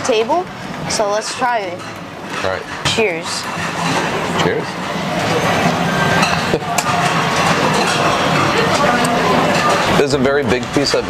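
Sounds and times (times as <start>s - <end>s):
many diners talking: 0.0s - 11.0s
dishes clinking: 5.2s - 10.0s.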